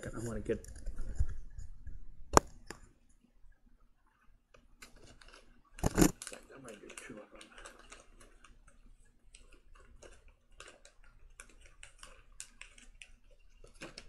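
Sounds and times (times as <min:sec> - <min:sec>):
packet crinkling and rustling: 0:04.8 - 0:14.0.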